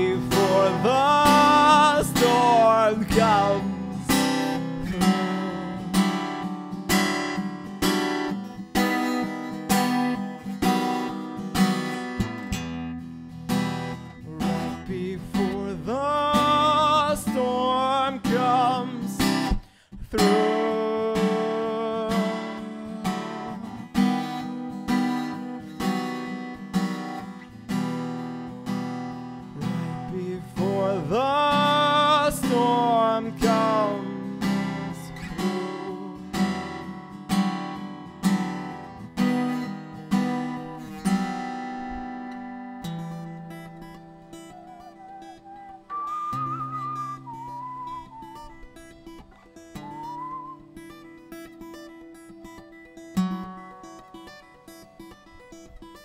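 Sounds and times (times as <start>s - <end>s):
wordless vocal line: 0.0s - 6.6s, 14.2s - 24.0s, 29.6s - 37.0s
acoustic guitar strumming chords: 0.0s - 56.0s.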